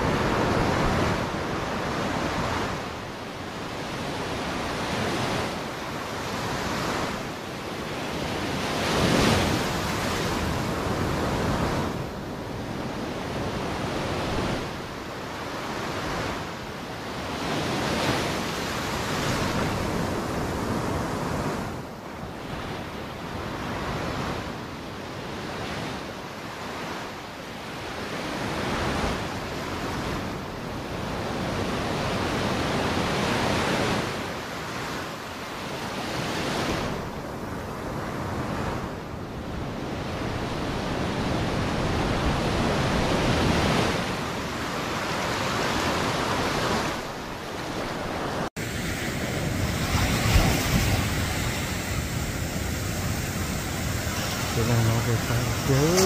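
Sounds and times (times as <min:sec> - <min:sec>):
ocean surf washing: 0:00.0 - 0:56.0
steady hiss of surf: 0:39.4 - 0:56.0.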